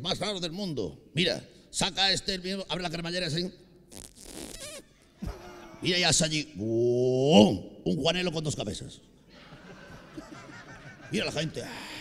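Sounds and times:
man imitating a zipper: 3.9 - 5.9.

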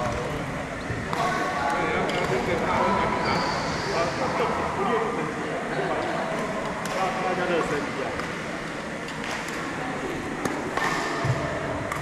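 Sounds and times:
voices echoing in a hall: 0.0 - 12.0
racket striking shuttlecock: 10.4 - 12.0.

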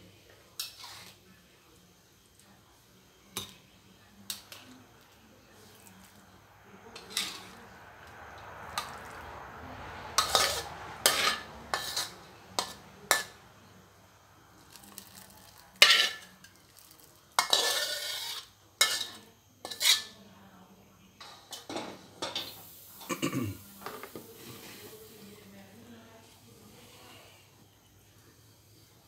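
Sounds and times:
metal ladle scraping a wok: 0.6 - 1.2, 7.0 - 7.8, 8.7 - 9.2, 10.1 - 13.4, 14.7 - 20.2.

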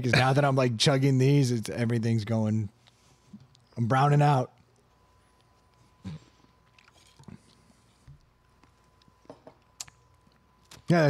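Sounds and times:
person gulping a drink: 6.0 - 7.8.

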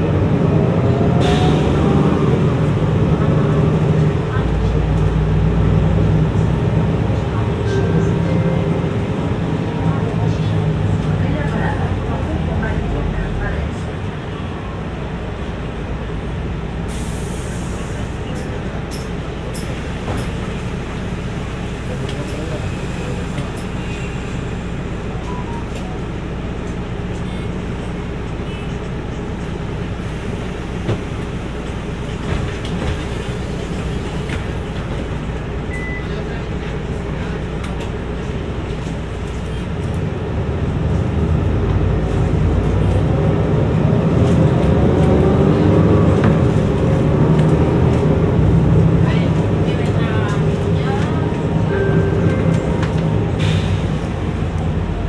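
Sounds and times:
bus accelerating: 0.0 - 55.0
bus engine running: 0.0 - 55.0.

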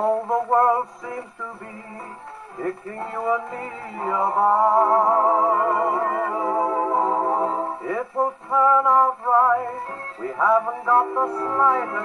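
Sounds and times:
dance-band record on gramophone: 0.0 - 12.0
man singing with vibrato: 0.0 - 12.0.

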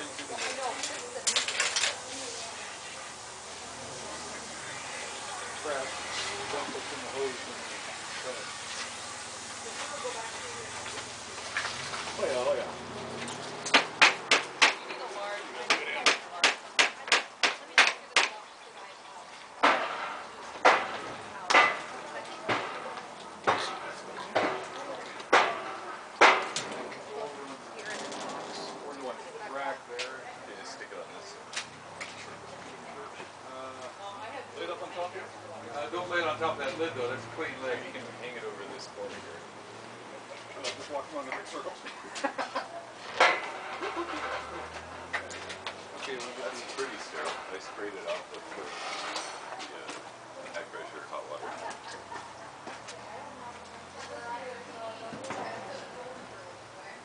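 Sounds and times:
faint voices: 0.0 - 57.0
people talking in background: 0.0 - 57.0
sharp knocks: 13.7 - 14.8, 15.7 - 18.4, 19.6 - 23.8, 25.3 - 26.8.

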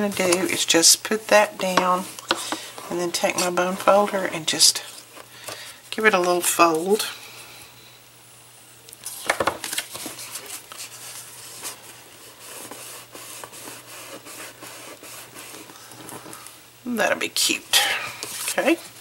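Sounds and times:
paper rustling and crackling: 9.0 - 16.5.

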